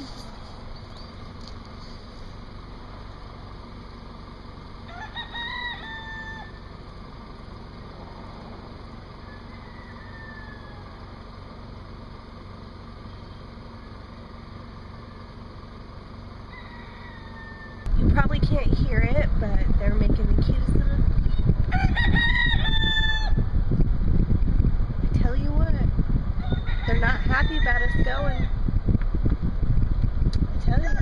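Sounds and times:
low outdoor rumble: 0.0s - 31.0s
peafowl calling: 4.8s - 6.8s, 9.0s - 11.4s, 16.3s - 17.9s.

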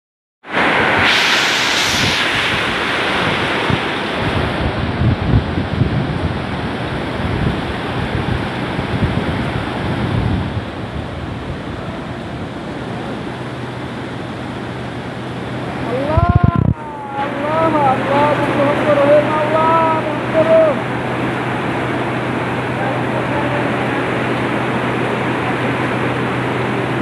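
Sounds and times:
hail and heavy rain: 0.5s - 7.0s
wind buffeting microphone: 0.6s - 27.0s.

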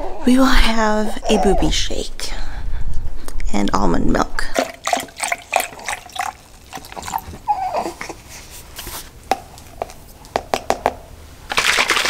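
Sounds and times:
liquid sloshing in shaken bottle: 4.6s - 7.5s, 11.5s - 12.0s.

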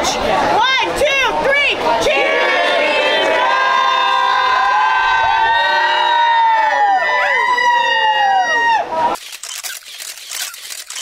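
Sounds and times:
crowd shouting a toast: 0.0s - 9.2s.

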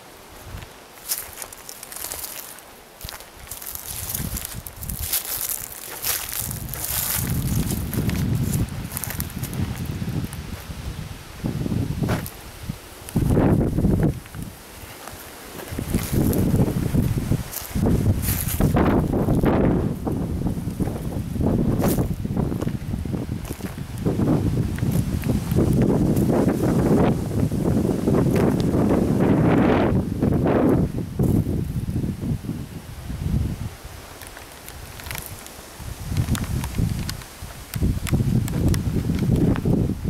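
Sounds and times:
leaves rustling: 0.0s - 40.0s
footsteps on dry ground: 0.3s - 32.1s, 33.2s - 40.0s
wind buffeting microphone: 0.4s - 2.3s, 3.0s - 40.0s.

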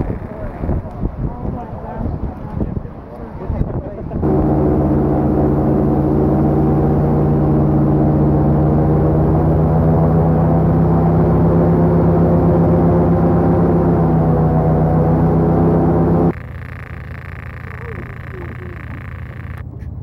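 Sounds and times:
airboat engine and propeller drone: 0.0s - 20.0s.

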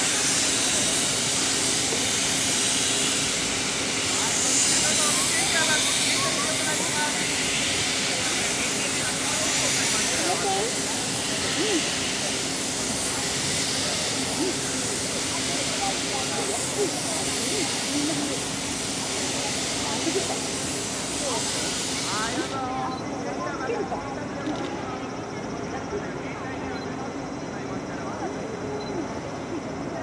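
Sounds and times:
steam hissing: 0.0s - 30.0s
steam locomotive moving off: 0.0s - 30.0s.

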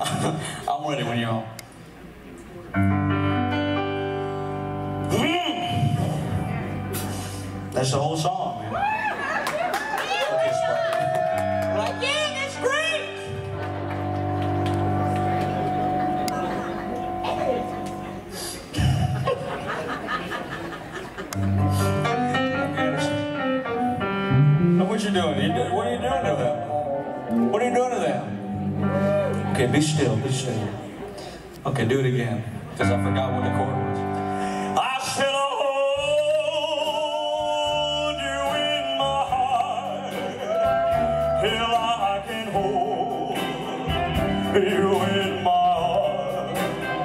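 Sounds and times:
electric keyboard chord: 2.8s - 8.0s, 11.7s - 18.5s, 21.4s - 25.9s, 26.5s - 30.0s
bass guitar: 11.3s - 19.2s, 21.4s - 26.4s, 28.4s - 30.2s, 36.8s - 47.0s.

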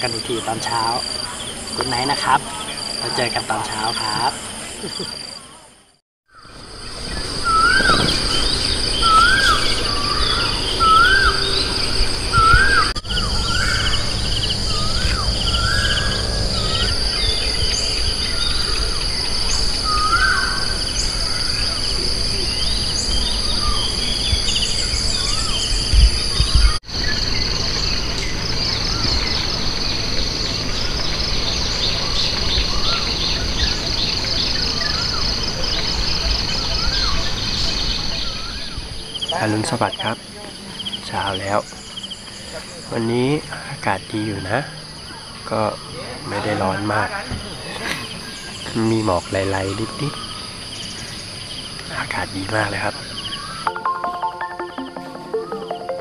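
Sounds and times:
bird chirps: 6.3s - 56.0s
high-pitched insect drone: 6.3s - 56.0s
bird whistled call: 7.2s - 27.4s, 30.8s - 39.2s.

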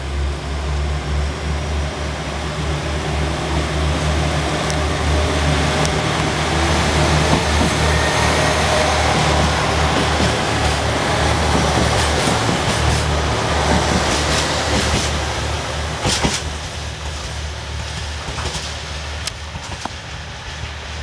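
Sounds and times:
diesel engines humming: 0.0s - 21.0s
moving train noise: 0.0s - 21.0s.

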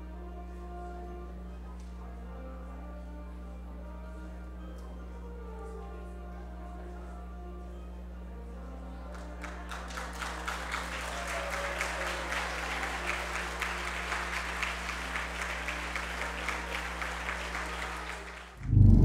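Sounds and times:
audience applauding: 9.1s - 18.6s.

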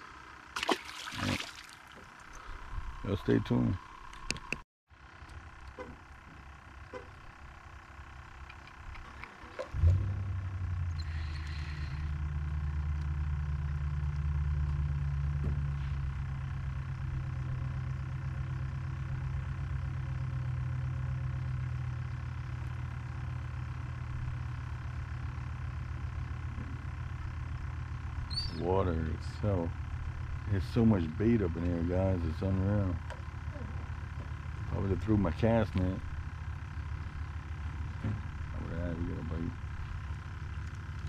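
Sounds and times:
faint outdoor background: 0.0s - 41.0s
low engine rumble: 0.0s - 41.0s.

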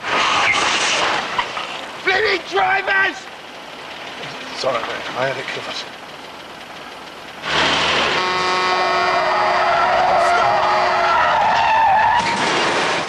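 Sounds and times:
car tyres screeching: 0.0s - 13.0s
car horn held: 7.9s - 11.7s.

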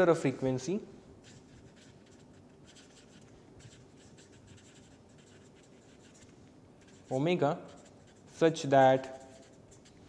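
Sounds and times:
marker scratching on paper: 1.2s - 10.0s.

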